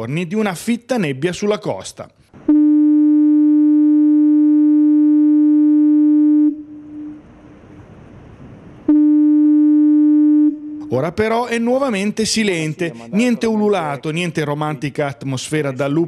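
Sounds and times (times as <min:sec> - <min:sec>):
fog signal low tone blasts: 0:02.4 - 0:07.7, 0:08.8 - 0:11.0
faint background noise: 0:06.5 - 0:09.3, 0:10.4 - 0:16.0.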